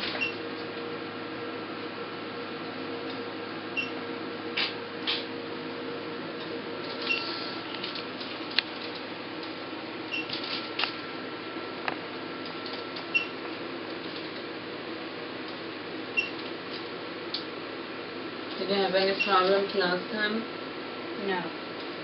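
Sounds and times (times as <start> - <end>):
machine humming: 0.0 - 22.0.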